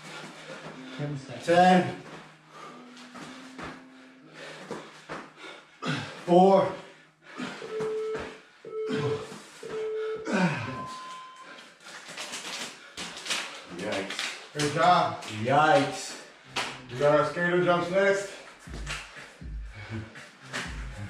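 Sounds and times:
interval timer beeps: 7.4s - 11.6s.

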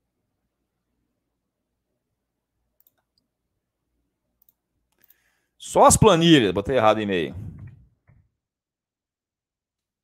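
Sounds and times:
faint computer clicks: 2.8s - 3.3s, 4.4s - 5.2s.

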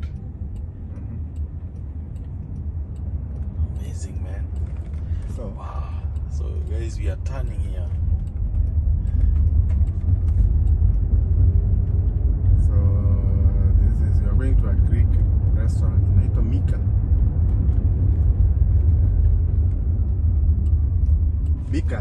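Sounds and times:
road and tyre rumble: 0.0s - 22.0s.

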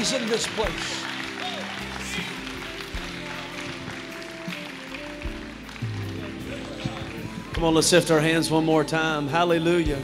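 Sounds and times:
soft worship music chords: 0.0s - 10.0s.

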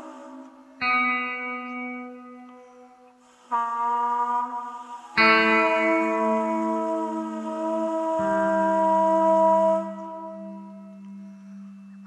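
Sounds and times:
guitar notes ringing: 0.0s - 12.0s.

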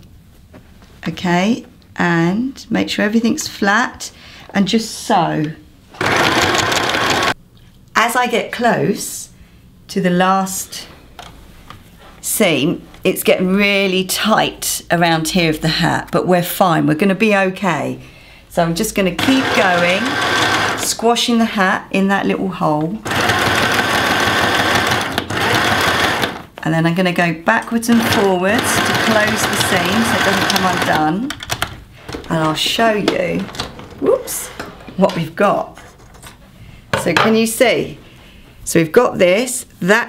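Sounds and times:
sewing machine running: 6.0s - 7.4s, 19.2s - 20.9s, 23.0s - 26.4s, 27.9s - 31.2s.

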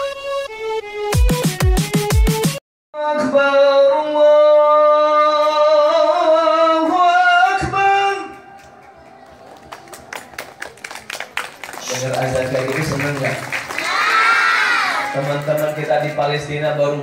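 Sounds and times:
man singing through microphone: 3.0s - 8.6s.

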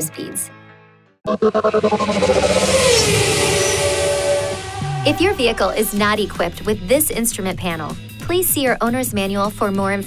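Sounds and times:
falling whoosh: 1.3s - 7.4s.

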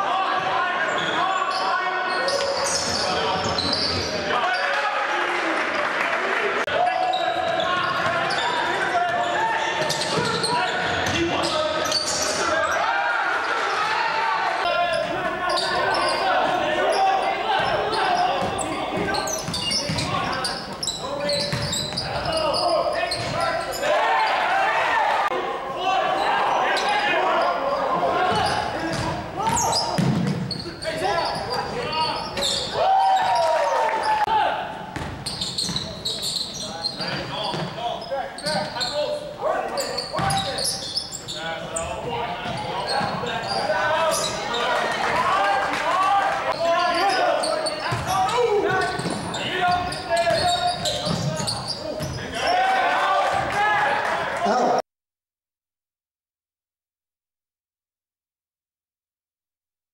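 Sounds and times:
people shouting and talking: 0.0s - 54.8s.

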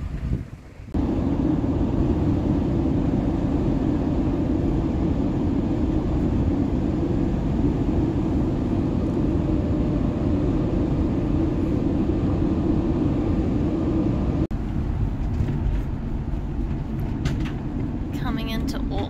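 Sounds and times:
vehicle road and engine rumble: 0.0s - 19.0s.

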